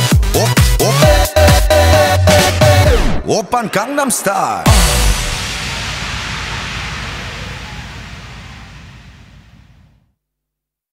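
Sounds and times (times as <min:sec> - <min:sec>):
hissing noise: 0:04.7 - 0:10.0
low rumble: 0:04.7 - 0:10.0.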